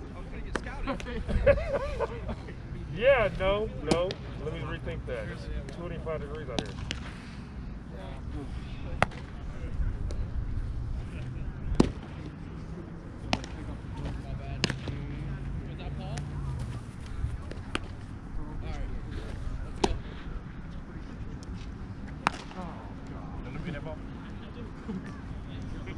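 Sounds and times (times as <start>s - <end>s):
faint voices: 0.0s - 25.9s
baseballs popping into leather gloves: 13.2s - 15.0s.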